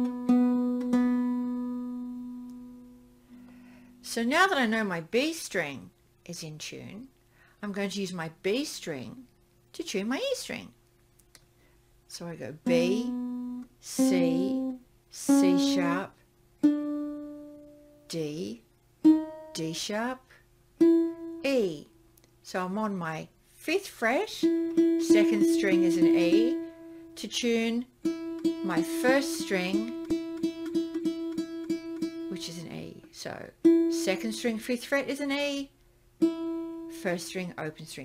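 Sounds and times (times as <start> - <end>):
ukulele strings plucked: 0.0 - 2.9, 12.7 - 16.0, 16.6 - 17.5, 20.8 - 21.4, 24.4 - 26.7, 28.0 - 32.5, 33.6 - 34.3, 36.2 - 37.0.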